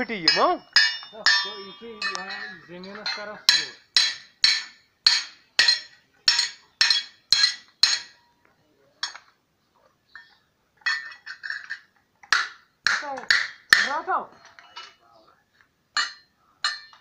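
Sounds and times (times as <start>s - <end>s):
hammer striking steel: 0.2s - 8.2s, 16.0s - 17.0s
light metallic clinks: 0.2s - 8.2s.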